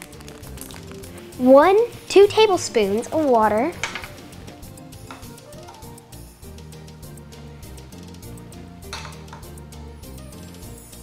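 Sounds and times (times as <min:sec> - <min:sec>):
background music: 0:00.0 - 0:11.0
spoon clinking on bowl: 0:08.9 - 0:09.5.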